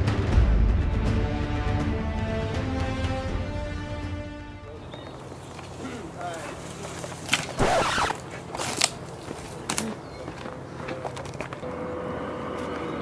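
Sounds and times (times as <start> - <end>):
leaves rustling: 4.8 - 9.9
wood scraping on dirt: 6.5 - 9.9.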